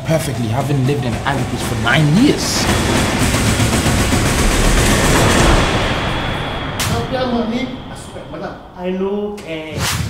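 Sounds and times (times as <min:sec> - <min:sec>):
dense low rumbling: 0:00.3 - 0:09.6.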